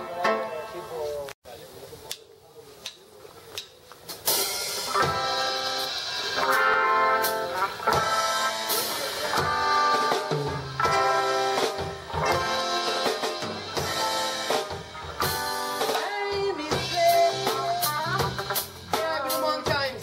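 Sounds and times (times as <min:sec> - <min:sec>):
rock band playing: 0:00.0 - 0:01.3, 0:04.0 - 0:20.0.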